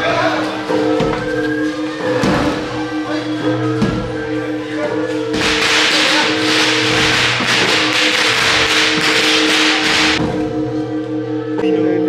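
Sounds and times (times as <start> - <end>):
procession music held tone: 0.0 - 12.0
rapid crashing: 5.3 - 10.2.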